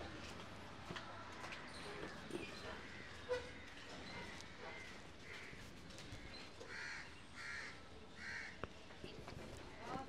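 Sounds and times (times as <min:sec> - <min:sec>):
crow cawing: 0:06.6 - 0:08.6.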